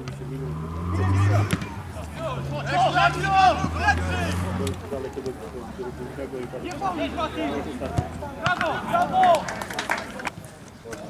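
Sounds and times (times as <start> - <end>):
quiet voices: 0.0 - 11.0
men shouting: 0.8 - 4.6.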